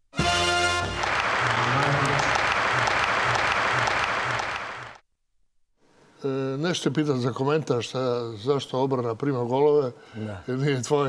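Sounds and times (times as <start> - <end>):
crowd applause: 0.2 - 5.0.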